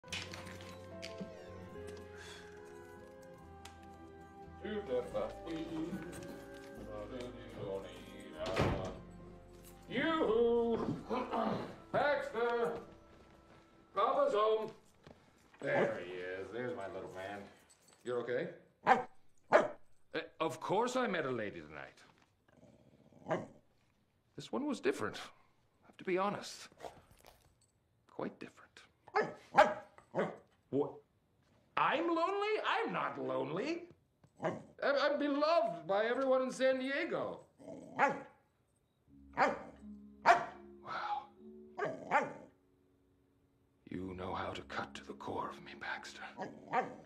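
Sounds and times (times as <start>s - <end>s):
man speaking: 4.6s - 9.1s, 15.6s - 18.3s, 43.9s - 46.4s
small dog barking: 18.8s - 19.8s, 29.1s - 30.4s, 37.9s - 38.3s, 39.4s - 40.6s, 41.8s - 42.5s, 46.4s - 47.0s.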